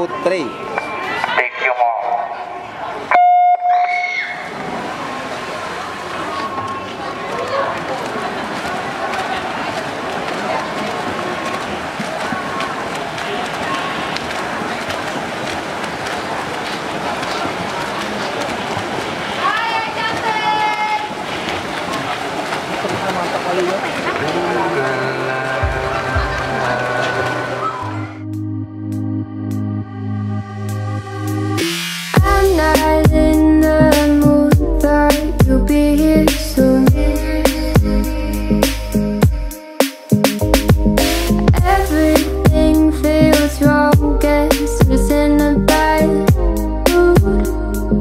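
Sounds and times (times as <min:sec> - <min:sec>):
spectators' voices: 0:00.0 - 0:28.2
swimmers splashing: 0:02.0 - 0:28.2.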